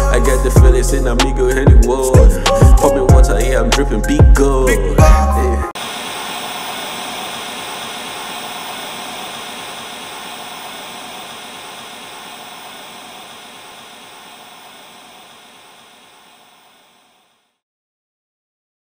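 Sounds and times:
television static hiss: 0:05.8 - 0:17.6.

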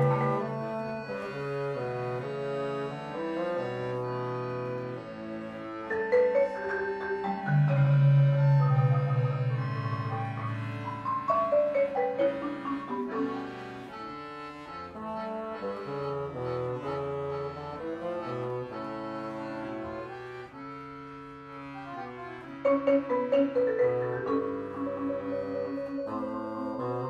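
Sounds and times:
accordion: 0:00.0 - 0:27.0
bassoon: 0:00.0 - 0:27.0
marimba: 0:05.5 - 0:14.3, 0:22.5 - 0:27.0.

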